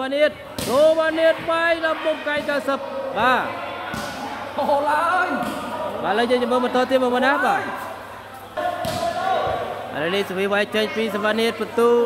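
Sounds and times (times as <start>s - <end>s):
volleyball thudding on court: 8.8s - 9.6s.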